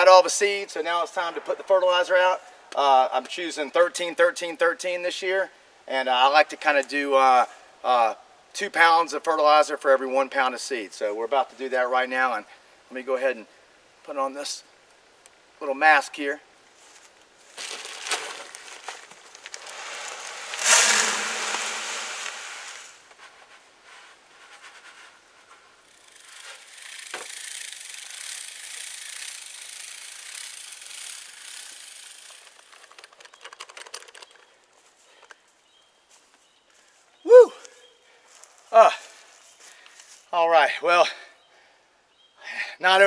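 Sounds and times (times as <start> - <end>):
granules pouring into spreader: 17.6 - 23.0
hand-cranked spreader whirring: 19.5 - 22.9, 25.9 - 33.9.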